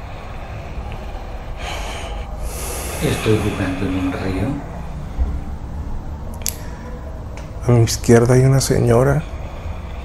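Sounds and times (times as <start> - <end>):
person breathing: 0.0 - 5.1, 9.2 - 10.0
steady low rumble: 0.0 - 10.0.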